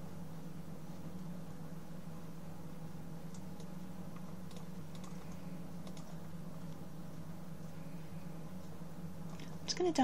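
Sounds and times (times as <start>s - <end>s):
steady low hum: 0.0s - 10.0s
computer keyboard clicks: 3.3s - 6.2s.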